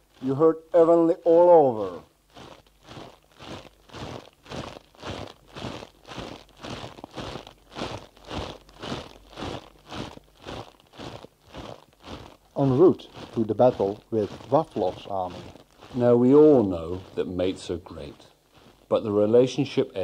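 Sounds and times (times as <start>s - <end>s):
footsteps crunching through snow: 0.0s - 20.0s.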